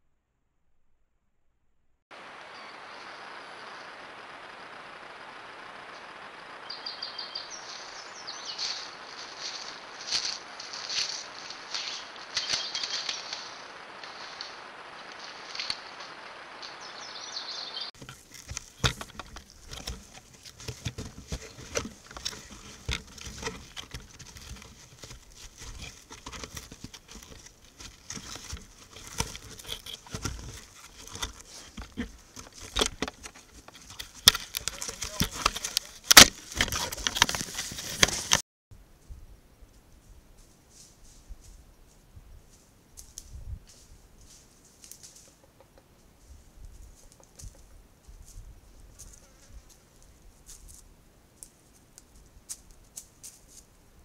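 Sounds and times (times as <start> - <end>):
steady hiss: 2.1 - 17.8
footsteps on rocky ground: 7.1 - 15.9, 18.0 - 38.4
footsteps crunching in snow: 7.1 - 16.9, 17.9 - 38.4.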